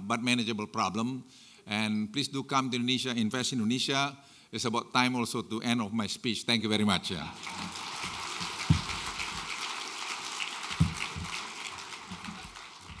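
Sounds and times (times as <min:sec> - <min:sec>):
audience applauding: 0:07.3 - 0:13.0.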